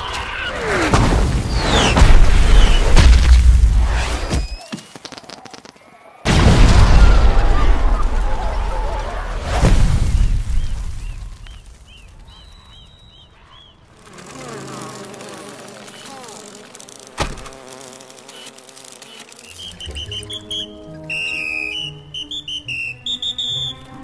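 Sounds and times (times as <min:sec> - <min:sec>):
insect buzzing: 0:01.5 - 0:05.8, 0:13.4 - 0:23.8.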